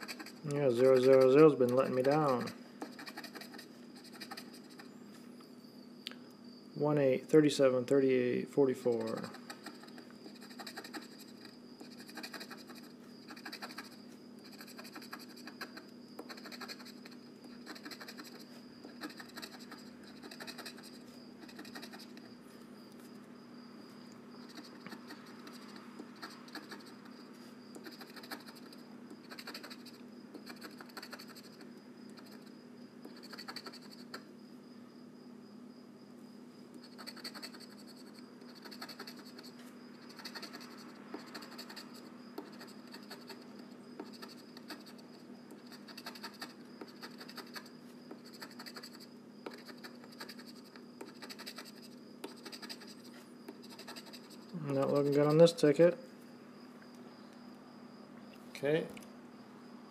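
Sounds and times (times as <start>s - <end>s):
lottery ticket being scratched: 0.0s - 4.9s, 8.8s - 22.2s, 24.4s - 27.1s, 27.8s - 32.5s, 33.1s - 34.2s, 36.8s - 45.0s, 45.6s - 55.7s
steady low hum: 0.0s - 59.9s.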